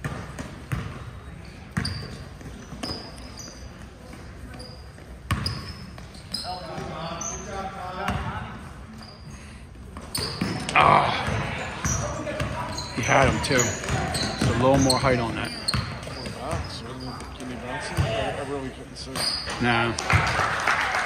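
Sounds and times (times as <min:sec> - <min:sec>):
basketball bouncing on wooden floor: 0:00.0 - 0:01.0
sneakers squeaking: 0:00.0 - 0:20.3.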